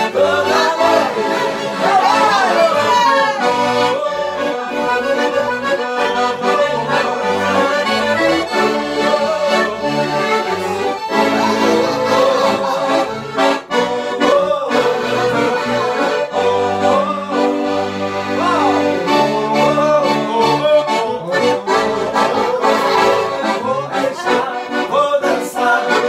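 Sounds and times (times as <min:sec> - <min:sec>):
two accordions playing dance tune: 0:00.0 - 0:26.0.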